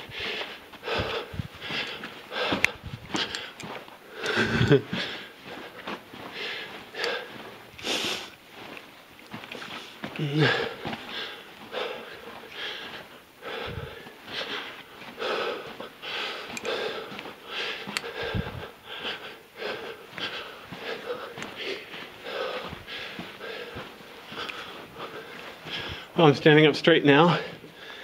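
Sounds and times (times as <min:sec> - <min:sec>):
man breathing hard: 0:00.0 - 0:08.8, 0:09.6 - 0:26.2, 0:27.2 - 0:28.0.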